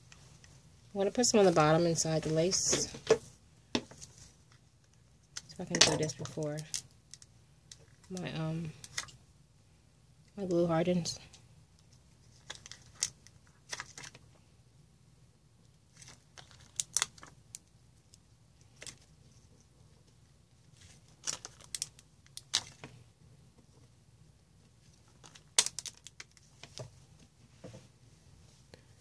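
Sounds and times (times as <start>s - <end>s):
clicks and crinkles of handling: 2.6s - 9.2s, 11.3s - 14.4s, 15.6s - 24.0s, 24.6s - 27.9s.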